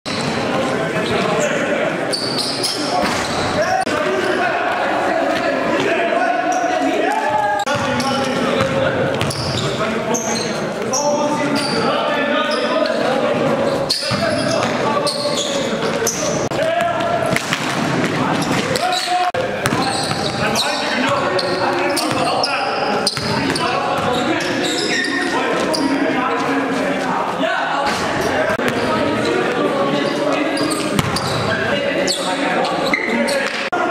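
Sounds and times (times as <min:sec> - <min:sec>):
players' voices and calls: 0:00.1 - 0:33.9.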